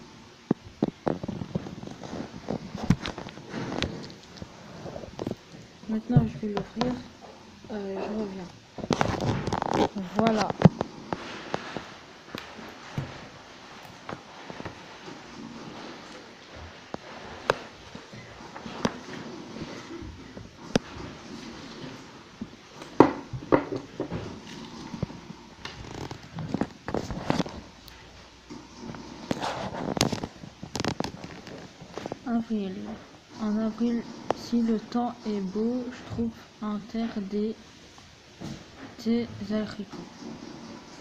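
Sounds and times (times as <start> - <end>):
pages being turned: 28.8 - 32.2.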